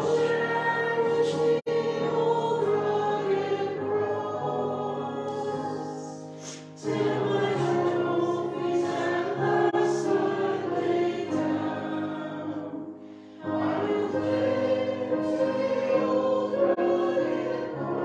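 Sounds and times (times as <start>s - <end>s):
group singing a hymn: 0.0s - 18.0s.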